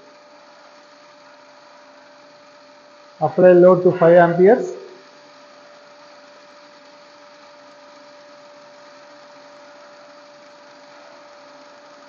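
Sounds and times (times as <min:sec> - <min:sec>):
electric motor humming with whine: 0:00.0 - 0:12.0.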